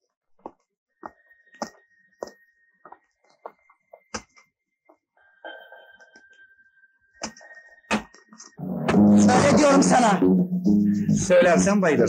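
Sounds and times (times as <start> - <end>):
footsteps of man walking: 0.0 - 6.4
music: 7.2 - 12.0.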